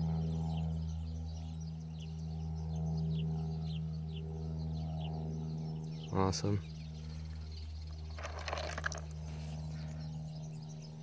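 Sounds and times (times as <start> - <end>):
low machine hum: 0.0 - 11.0
small birds chirping: 0.0 - 11.0.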